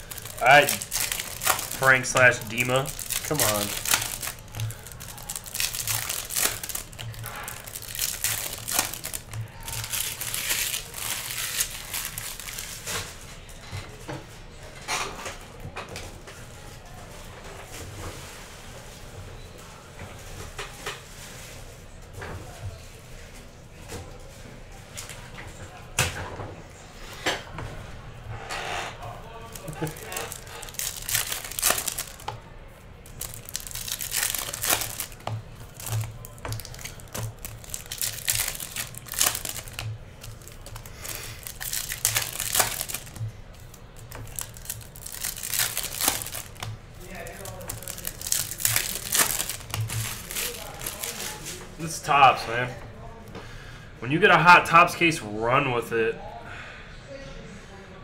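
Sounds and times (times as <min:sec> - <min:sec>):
foil wrappers tearing and crinkling: 0:00.0 - 0:13.2, 0:29.4 - 0:32.4, 0:33.0 - 0:52.3.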